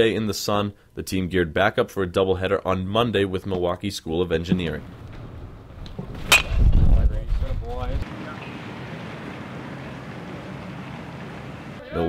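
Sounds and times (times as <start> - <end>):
wind rumbling on microphone: 5.1 - 11.8
bat hitting baseball: 6.2 - 6.6
steady outdoor hiss: 7.6 - 12.0
faint voice: 11.8 - 12.0.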